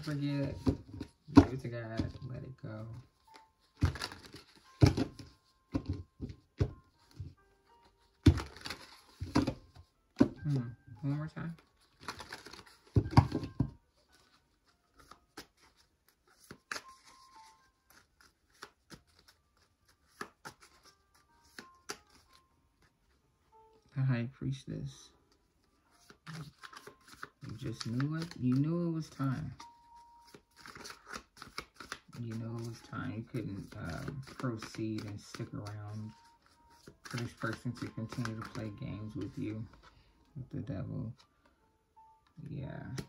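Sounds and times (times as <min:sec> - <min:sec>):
cards shuffling by hand: 0:00.0 - 0:22.9, 0:25.6 - 0:40.0.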